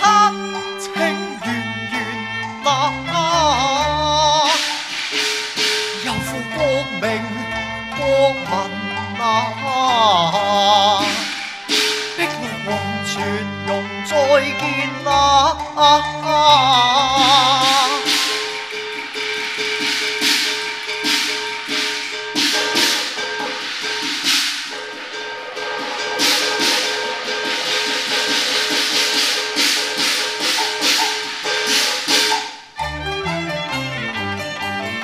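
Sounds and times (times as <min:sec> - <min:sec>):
melodic instruments playing tune: 0:00.0 - 0:35.0
loud percussion strikes: 0:04.4 - 0:07.2, 0:10.6 - 0:13.4, 0:17.1 - 0:32.9.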